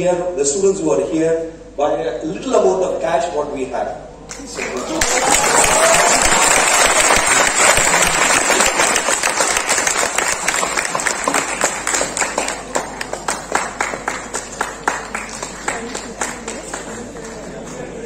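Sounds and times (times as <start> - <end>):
audience applause: 4.3 - 18.0.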